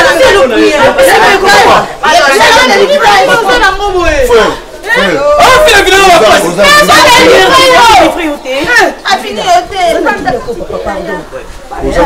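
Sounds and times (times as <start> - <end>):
people arguing loudly: 0.0 - 12.0.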